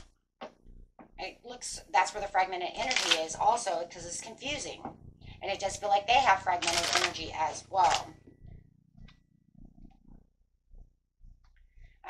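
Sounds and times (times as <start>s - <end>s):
faint low rumbling: 3.4s - 12.0s.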